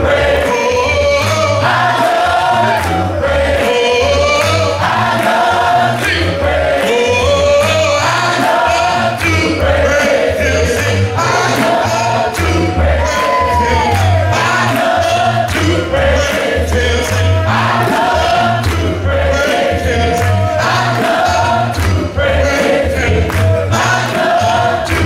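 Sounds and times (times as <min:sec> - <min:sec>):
band playing a steady beat: 0:00.0 - 0:25.0
choir singing: 0:00.0 - 0:25.0
man singing lead: 0:00.0 - 0:25.0.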